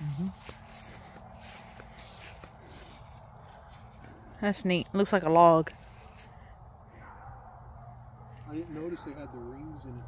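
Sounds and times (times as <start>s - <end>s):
footsteps on grass: 0.0s - 6.4s
outdoor background noise: 0.0s - 10.0s.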